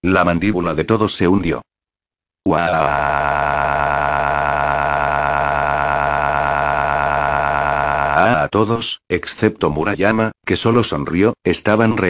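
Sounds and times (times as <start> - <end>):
synthesized voice holding vowel: 2.5 - 8.9.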